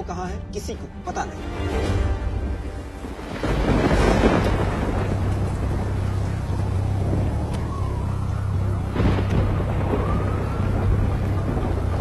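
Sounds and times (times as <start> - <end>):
low rumble: 0.9 - 12.0
rain hissing: 1.7 - 12.0.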